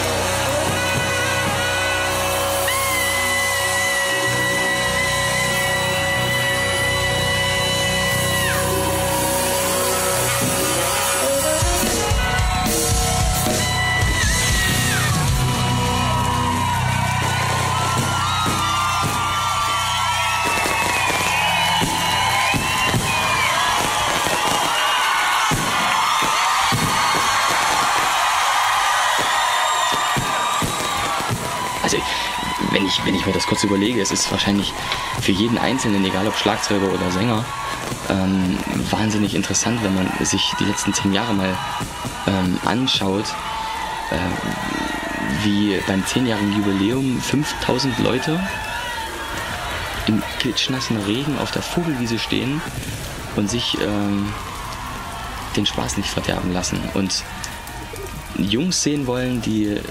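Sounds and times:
rock band playing live: 0:00.0 - 0:23.2
crowd yelling and whooping: 0:00.0 - 0:59.9.

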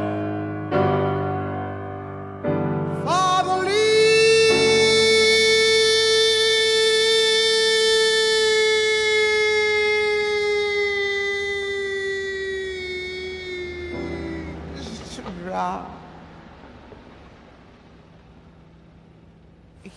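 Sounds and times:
long held musical note: 0:03.0 - 0:19.9.

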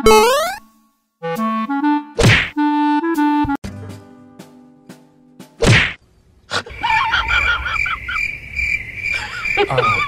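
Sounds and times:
sharp swish-whack effect: 0:02.2 - 0:02.6, 0:05.6 - 0:06.0.

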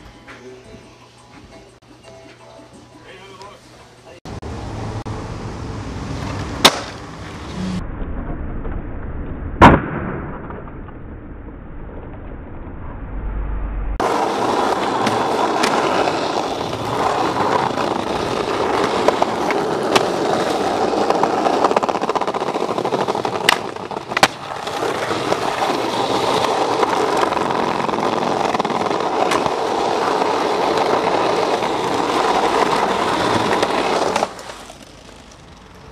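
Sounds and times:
skateboard wheels rolling on pavement: 0:04.3 - 0:09.2, 0:14.0 - 0:35.9
skateboard clacks: 0:06.2 - 0:07.0, 0:14.0 - 0:35.9.

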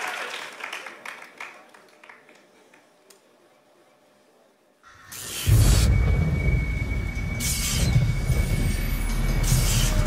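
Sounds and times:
loud deep rumble: 0:05.5 - 0:10.0.

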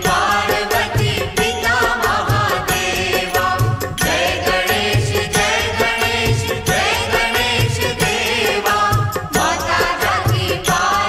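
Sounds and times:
steady percussion beat: 0:00.0 - 0:11.0
wavering devotional melody: 0:00.0 - 0:11.0.

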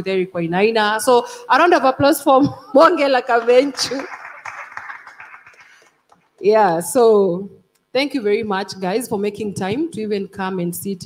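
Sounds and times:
audience applauding: 0:03.2 - 0:06.4.

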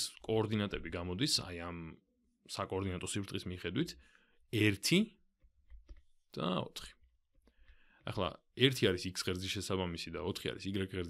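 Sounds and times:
narrator speaking: 0:04.6 - 0:05.2, 0:06.3 - 0:07.0.

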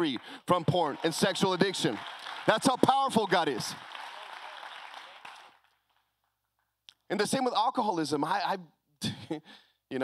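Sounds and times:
congregation applause: 0:00.0 - 0:06.1.

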